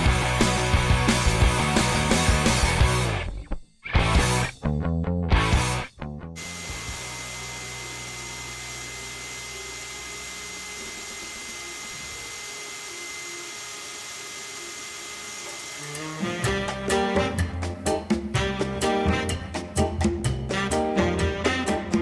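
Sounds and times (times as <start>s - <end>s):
swing tune with brass: 16.2s - 22.0s.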